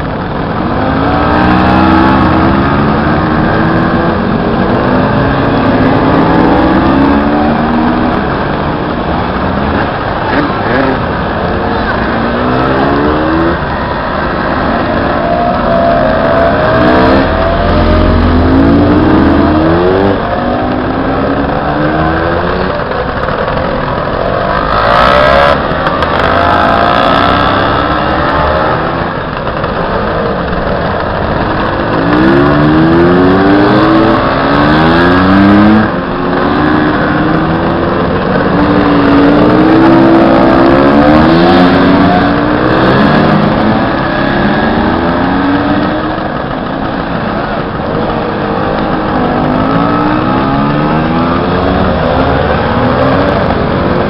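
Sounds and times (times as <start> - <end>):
scooter engines revving: 0.0 - 54.0.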